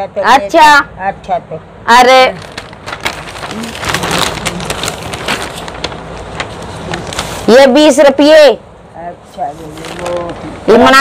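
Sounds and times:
plastic bag rustling: 0:02.3 - 0:07.7, 0:09.5 - 0:10.9.

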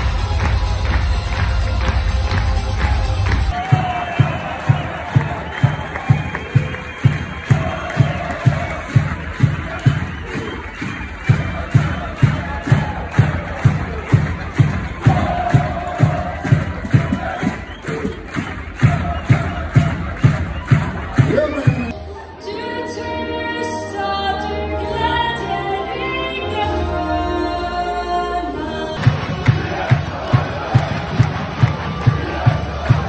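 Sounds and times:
drum beaten fast: 0:00.0 - 0:21.9, 0:29.0 - 0:33.0
crowd chanting and cheering: 0:00.0 - 0:27.0, 0:27.9 - 0:33.0.

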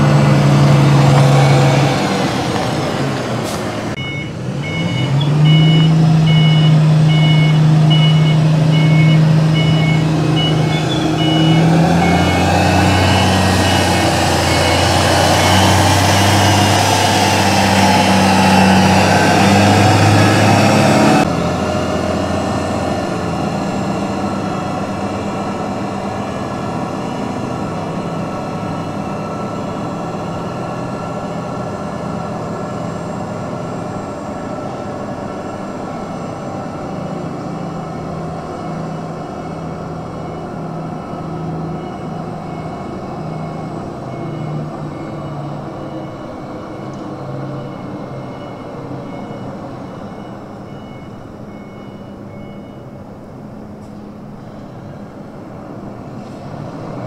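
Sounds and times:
truck diesel engine running: 0:00.0 - 0:51.8.

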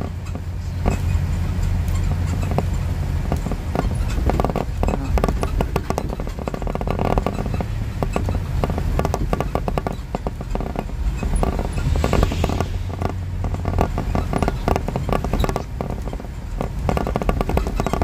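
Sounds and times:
rattling clicks: 0:00.0 - 0:18.0
road and engine rumble: 0:00.0 - 0:18.0.

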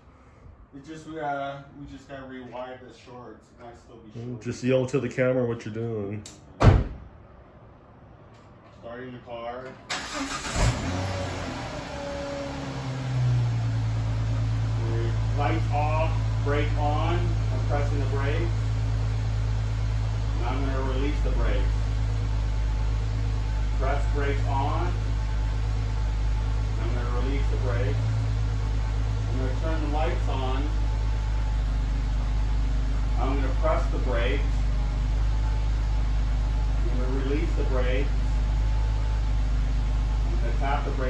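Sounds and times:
car engine idling: 0:09.9 - 0:41.0.

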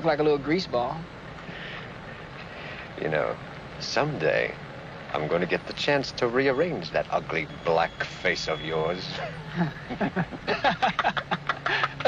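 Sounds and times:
faint soft hiss: 0:00.0 - 0:12.0
low background rumble: 0:00.0 - 0:12.0.

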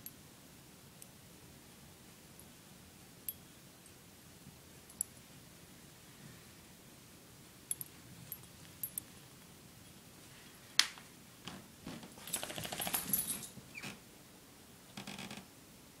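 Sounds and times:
metallic rattle of collar fittings: 0:07.7 - 0:09.1, 0:12.2 - 0:13.6.

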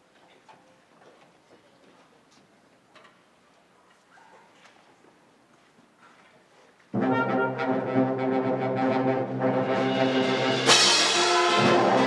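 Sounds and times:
concert band brass chord: 0:07.0 - 0:12.0.

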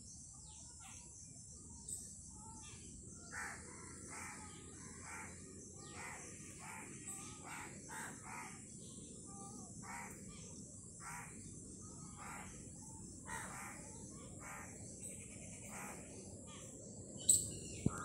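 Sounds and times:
birds giving harsh calls: 0:05.0 - 0:08.6, 0:12.1 - 0:18.0.

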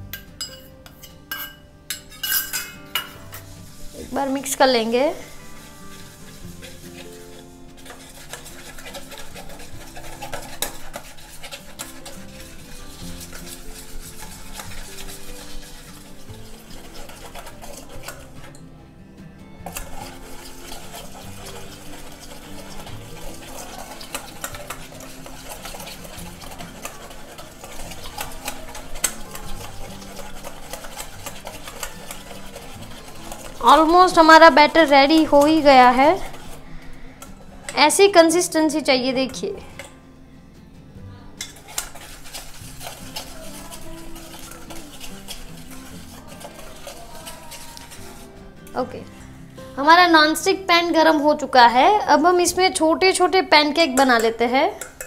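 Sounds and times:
whisk beating batter in bowl: 0:02.5 - 0:18.6, 0:19.6 - 0:39.9, 0:41.4 - 0:48.4, 0:53.3 - 0:55.0.

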